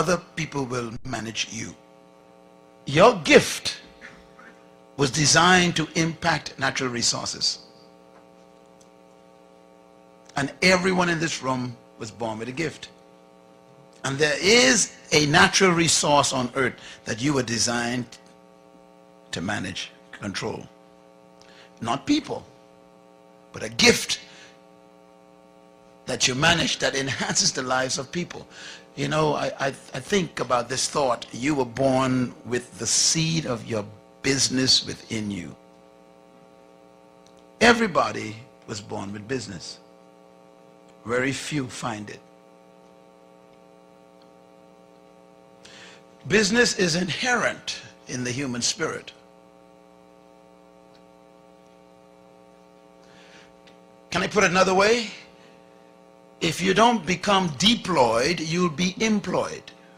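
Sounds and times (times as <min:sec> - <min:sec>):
echoing spoken word: 0:00.0 - 0:01.8, 0:02.9 - 0:04.0, 0:05.0 - 0:07.6, 0:10.3 - 0:13.0, 0:14.0 - 0:18.2, 0:26.1 - 0:35.6, 0:41.1 - 0:42.2, 0:46.3 - 0:49.2, 0:54.1 - 0:55.4, 0:56.4 - 0:59.7
electrical mains hum: 0:00.0 - 0:59.9.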